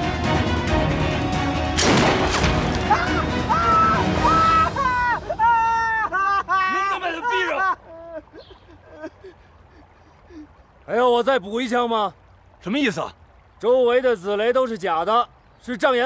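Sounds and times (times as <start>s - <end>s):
tense film score music: 0.0s - 6.7s
sudden boom: 1.8s - 2.8s
man sobbing loudly: 2.9s - 10.5s.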